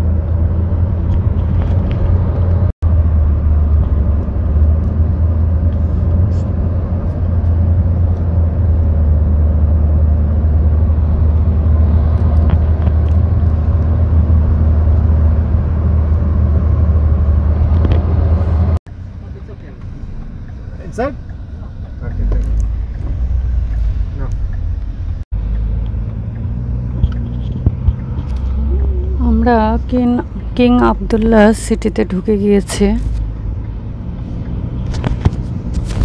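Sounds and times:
road and engine noise inside car: 0.0s - 36.0s.

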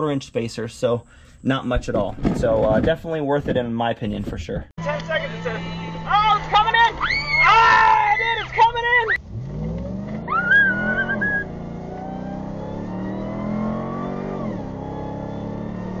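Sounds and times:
vehicle engine revving: 8.5s - 16.0s.

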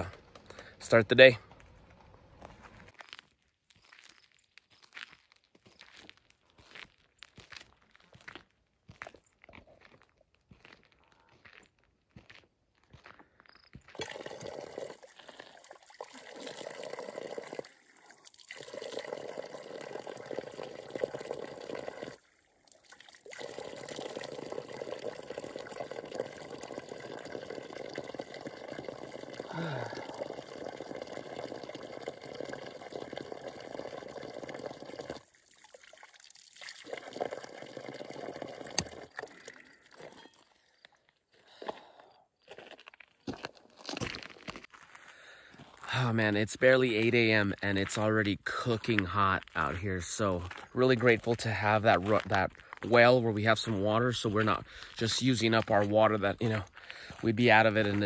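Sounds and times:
water pouring onto gravel and puddle: 14.0s - 40.2s, 45.9s - 58.0s.

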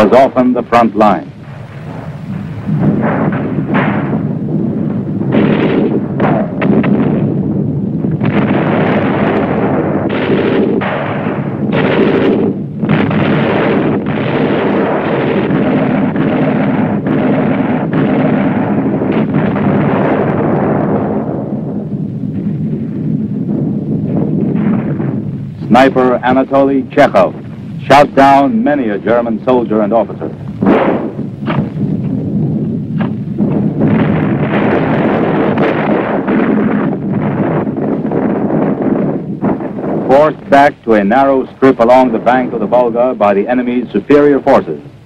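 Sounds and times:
dense gunfire: 0.0s - 45.0s
explosions: 0.0s - 45.0s.

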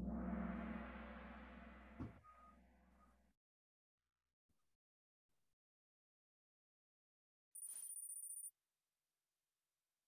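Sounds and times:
gong-like hit ringing: 0.0s - 2.4s.

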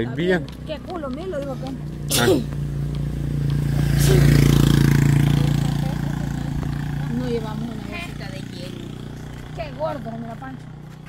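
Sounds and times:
motorcycle passing by: 0.0s - 11.0s.

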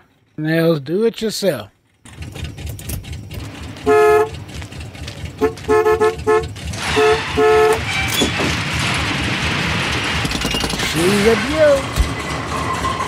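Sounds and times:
engine rumble: 1.6s - 13.0s
car horn honking: 3.7s - 4.6s, 5.2s - 8.2s.

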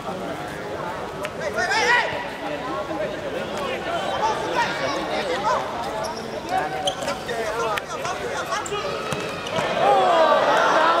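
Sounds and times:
players shouting: 8.1s - 11.0s.

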